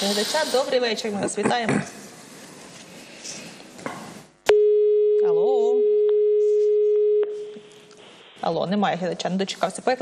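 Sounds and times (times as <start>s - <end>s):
steady telephone line tone: 4.5s - 7.8s.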